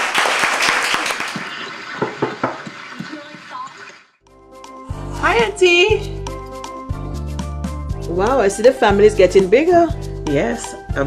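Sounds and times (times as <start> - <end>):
children applauding: 0.0 - 4.0.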